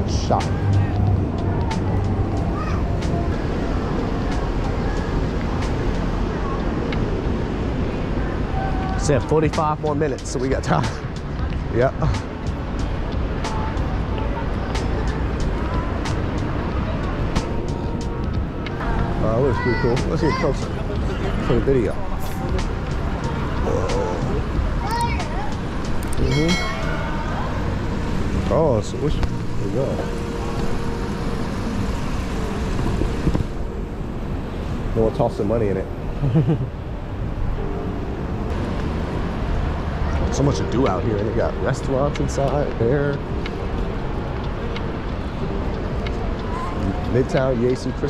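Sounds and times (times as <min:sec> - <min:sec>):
road traffic rumble: 0:00.0 - 0:48.0.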